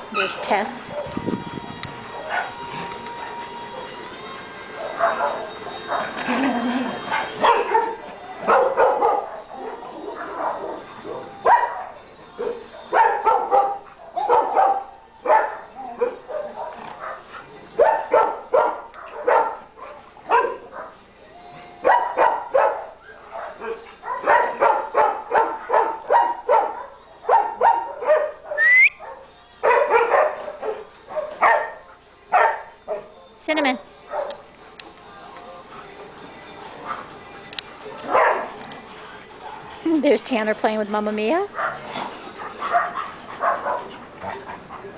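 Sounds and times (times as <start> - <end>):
dogs barking: 0.2 - 1.2, 2.1 - 2.7, 4.7 - 21.0, 21.8 - 33.2, 34.0 - 34.5, 36.8 - 37.2, 38.0 - 38.8, 41.5 - 44.9
dog whining: 28.5 - 29.1.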